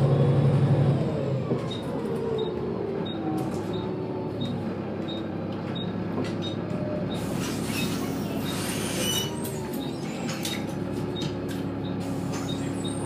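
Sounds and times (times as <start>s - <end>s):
bus diesel engine idling: 0.0s - 13.0s.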